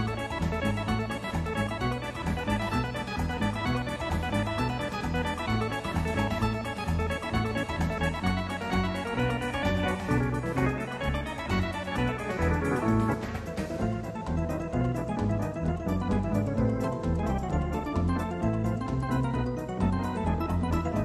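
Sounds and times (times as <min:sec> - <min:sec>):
electronic organ playing: 0:00.0 - 0:21.0.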